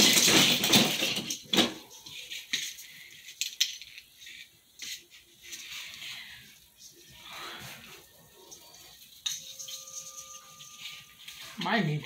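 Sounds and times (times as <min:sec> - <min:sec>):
ornaments clicking and rattling: 0:00.0 - 0:07.2, 0:08.3 - 0:12.0.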